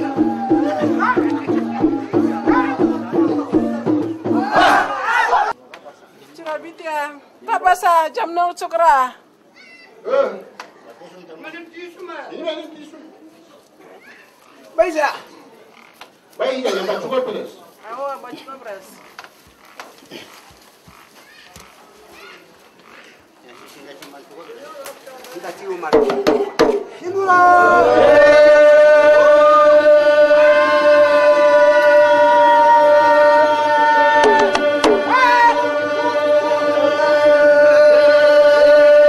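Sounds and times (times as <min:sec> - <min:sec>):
loud crowd shout: 0:00.0 - 0:03.5, 0:04.3 - 0:05.6, 0:27.1 - 0:39.0
hand drums beating: 0:00.0 - 0:04.6, 0:25.9 - 0:26.9, 0:34.2 - 0:35.4
group of voices singing: 0:00.0 - 0:05.6, 0:27.1 - 0:39.0
faint voices calling: 0:17.5 - 0:29.4.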